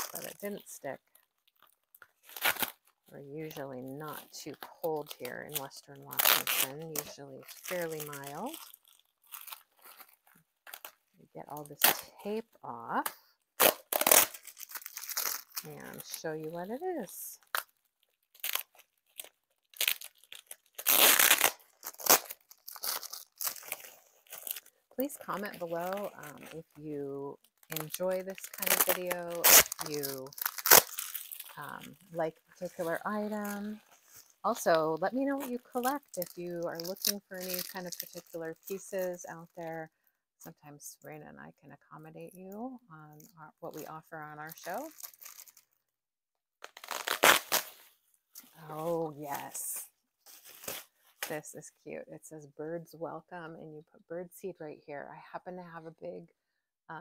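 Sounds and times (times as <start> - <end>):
tape peeling and tearing: 0.0 - 11.0, 13.6 - 26.7, 27.5 - 34.5, 35.2 - 39.2, 44.5 - 45.7, 46.6 - 49.0, 49.6 - 51.4
wrapping crinkling: 0.0 - 39.8, 43.1 - 45.8, 46.6 - 51.5.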